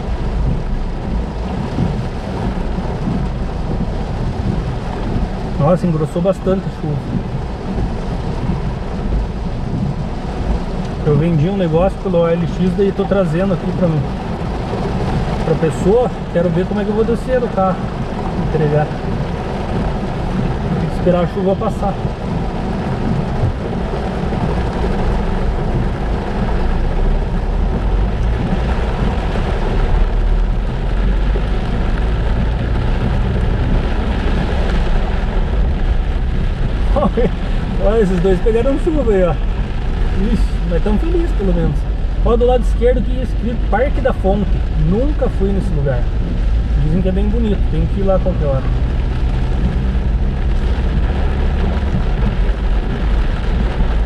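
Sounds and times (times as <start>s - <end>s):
deep low rumble: 0.0s - 11.8s, 12.4s - 54.0s
heavy rain on windshield: 0.0s - 54.0s.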